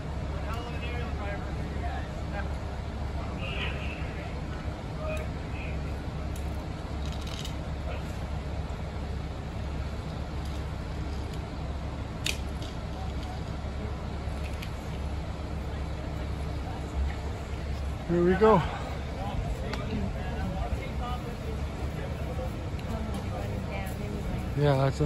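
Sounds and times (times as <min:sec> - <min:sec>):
diesel engines droning: 0:00.0 - 0:25.0.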